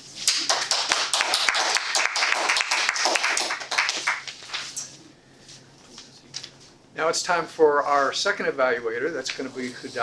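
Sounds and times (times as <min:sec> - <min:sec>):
audience applauding: 0:00.3 - 0:04.3.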